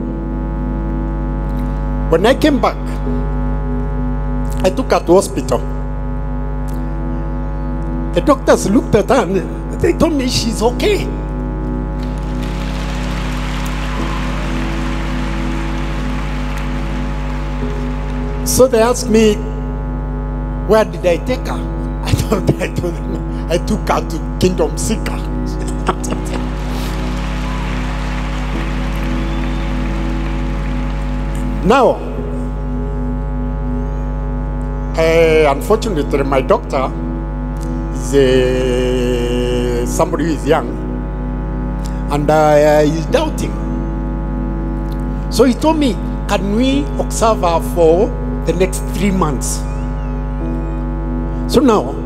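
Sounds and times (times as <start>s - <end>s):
sustained held chords: 0.0s - 52.0s.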